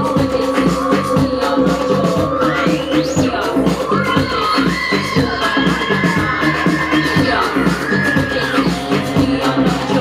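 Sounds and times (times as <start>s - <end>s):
gliding synthesizer line: 0.0s - 10.0s
pulsing bass beat: 0.0s - 10.0s.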